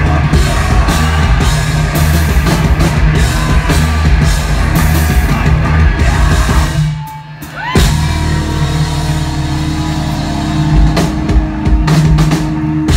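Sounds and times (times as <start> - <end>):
drum and cymbal hits: 0.0 - 12.9
rock band playing live: 0.0 - 12.9.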